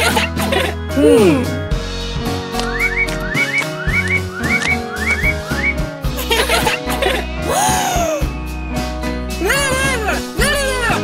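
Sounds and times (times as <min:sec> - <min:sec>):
children's background music: 0:00.0 - 0:11.0.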